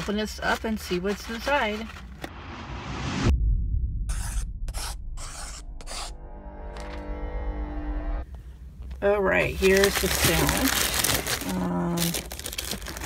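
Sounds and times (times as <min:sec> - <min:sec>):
deep bass hit: 0:02.3 - 0:05.2
held synth chord: 0:06.3 - 0:08.2.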